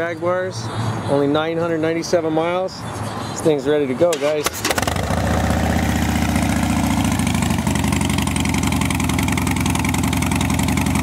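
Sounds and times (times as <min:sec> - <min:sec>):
motorcycle engine idling: 0:04.8 - 0:11.0.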